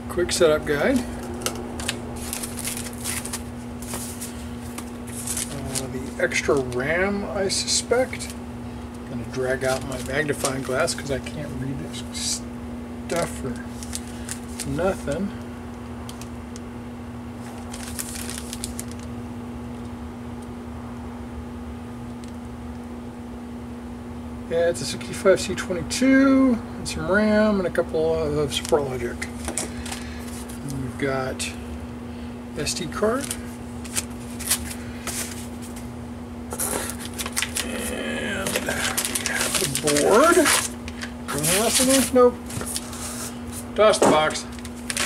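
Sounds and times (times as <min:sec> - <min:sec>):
steady background hum: 0:00.0 - 0:45.0
plastic bag crinkling: 0:00.8 - 0:06.9, 0:09.4 - 0:11.3, 0:13.1 - 0:15.1, 0:17.4 - 0:19.1, 0:33.1 - 0:35.9, 0:36.5 - 0:43.6, 0:44.2 - 0:45.0.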